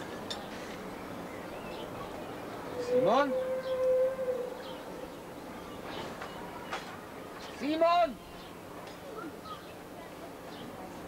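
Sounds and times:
siren-like whooping call: 0:02.8 - 0:04.8.

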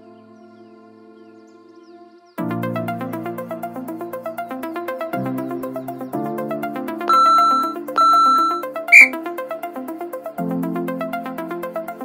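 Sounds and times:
electronic background music: 0:05.7 - 0:09.2
long timer beeps: 0:07.1 - 0:09.2
short high timer beep: 0:07.1 - 0:09.2.

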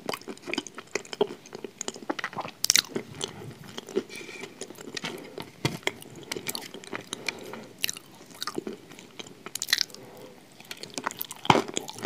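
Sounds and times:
close chewing with mouth clicks: 0:00.0 - 0:12.0.

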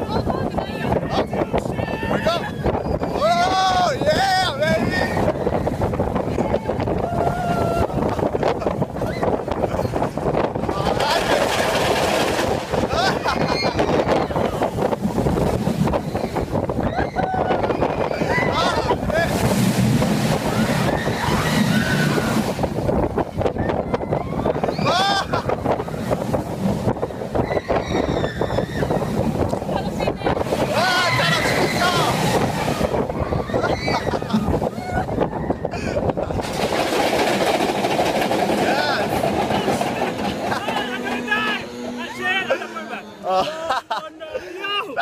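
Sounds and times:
wind rushing across microphone: 0:00.0 - 0:42.5
roller coaster rumbling on track: 0:00.0 - 0:45.0
riders yelling: 0:01.1 - 0:05.3, 0:16.8 - 0:19.4, 0:23.8 - 0:25.8, 0:30.6 - 0:35.2, 0:38.6 - 0:45.0.

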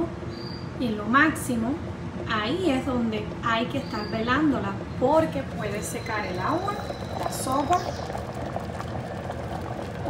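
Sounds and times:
water boiling with bubbling pops: 0:03.2 - 0:10.0.

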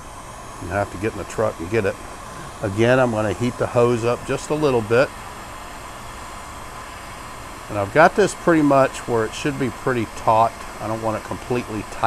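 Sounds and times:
heat gun blowing: 0:00.0 - 0:12.0.

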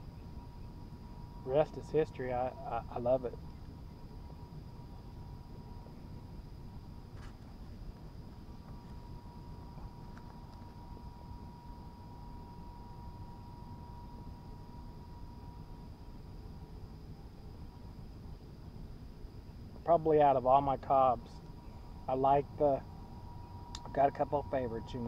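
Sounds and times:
faint high whine: 0:00.0 - 0:25.0
steady low rumble: 0:00.0 - 0:25.0.

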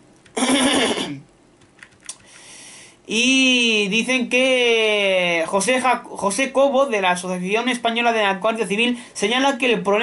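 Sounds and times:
man coughing: 0:00.4 - 0:01.3.

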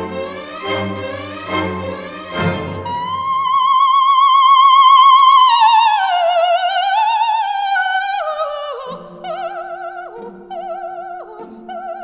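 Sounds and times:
orchestral chords: 0:00.0 - 0:03.6.

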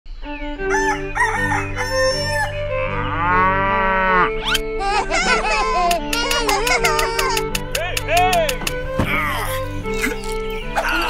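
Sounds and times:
music with long held notes: 0:00.1 - 0:11.0
farm animal calls: 0:00.5 - 0:04.7
rooster crowing: 0:00.7 - 0:03.0.

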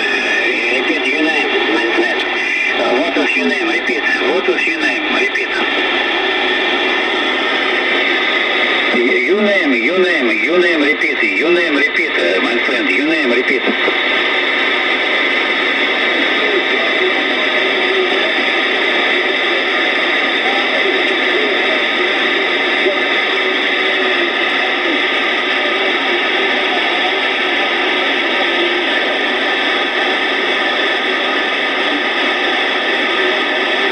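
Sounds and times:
faint garbled radio voices: 0:00.0 - 0:33.9
radio static hiss: 0:00.0 - 0:33.9.

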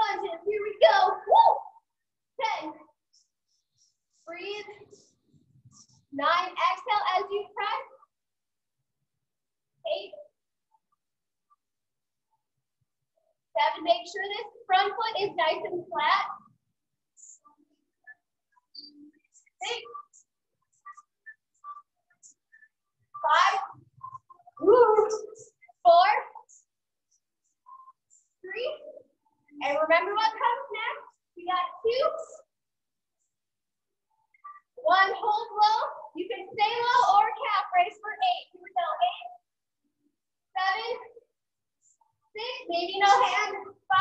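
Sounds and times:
woman speaking: 0:24.6 - 0:25.4.

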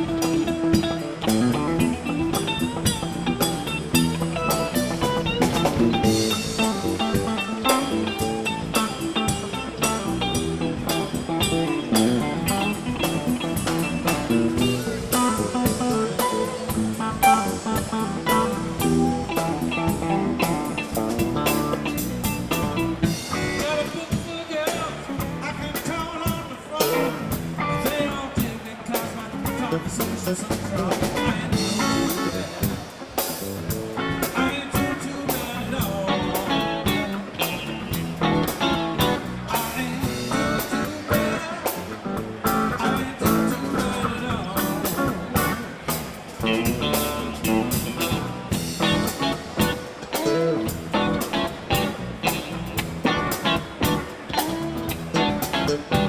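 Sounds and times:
drum kit: 0:00.0 - 0:56.0
electric bass: 0:00.0 - 0:56.0
electric guitars: 0:00.0 - 0:56.0.

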